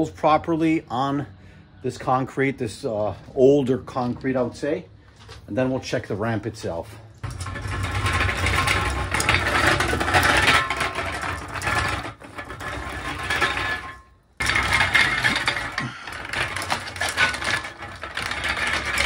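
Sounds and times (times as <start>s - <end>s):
dolly wheels rattling on concrete: 1.9s - 19.0s.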